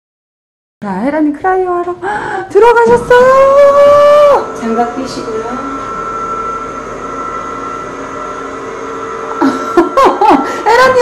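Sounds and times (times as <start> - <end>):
cryotherapy chamber humming: 1.0 - 11.0.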